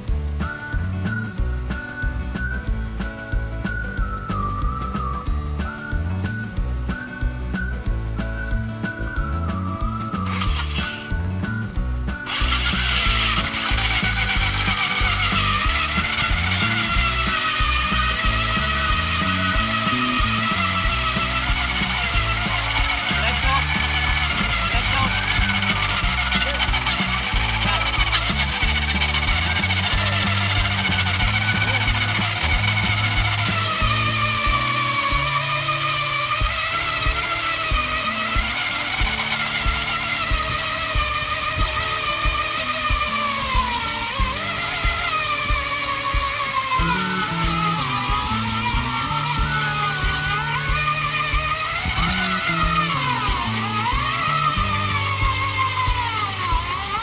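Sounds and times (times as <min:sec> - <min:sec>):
electric ice auger whining: 0:00.0 - 0:07.8, 0:08.4 - 0:57.0.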